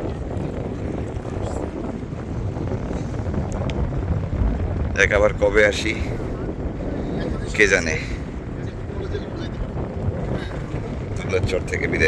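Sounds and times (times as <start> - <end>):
boat engine rumble: 0.0 - 12.0
wind on microphone: 0.0 - 12.0.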